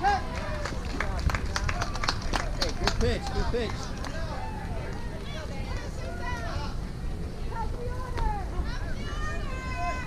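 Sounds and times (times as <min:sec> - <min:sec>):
wind rumble on microphone: 0:00.0 - 0:10.0
sharp hand claps: 0:00.4 - 0:04.2.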